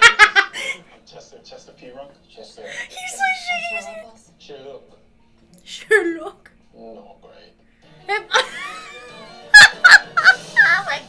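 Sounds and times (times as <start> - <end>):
woman laughing hard: 0.0 - 0.8, 8.3 - 10.4.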